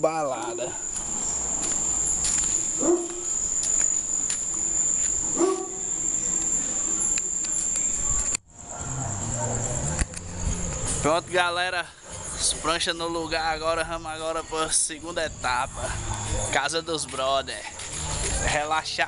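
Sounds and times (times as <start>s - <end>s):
crickets trilling: 0.0s - 19.0s.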